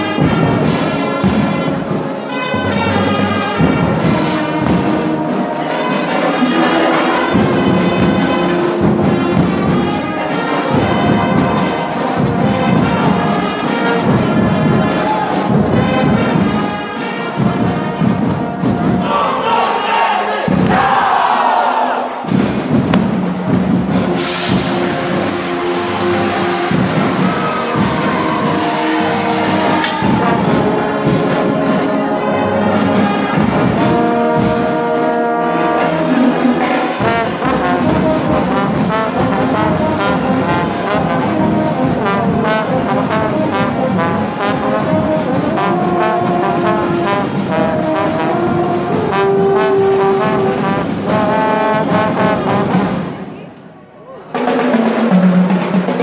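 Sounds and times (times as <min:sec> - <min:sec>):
marching drums: 0:00.0 - 0:53.4, 0:54.3 - 0:56.0
marching band playing: 0:00.0 - 0:53.5, 0:54.3 - 0:56.0
bright noisy wash: 0:24.0 - 0:31.3
brass sliding down in pitch: 0:24.1 - 0:53.0.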